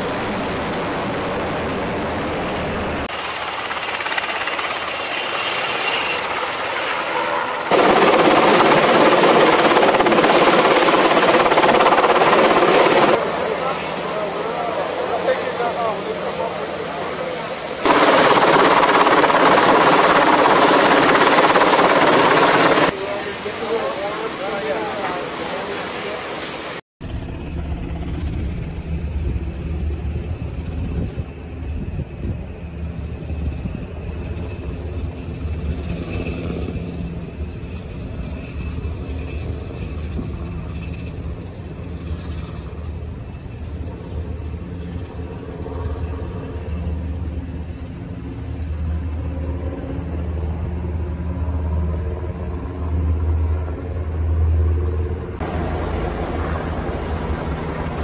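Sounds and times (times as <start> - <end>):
helicopter rotor chopping: 0.0 - 31.8, 38.7 - 58.0.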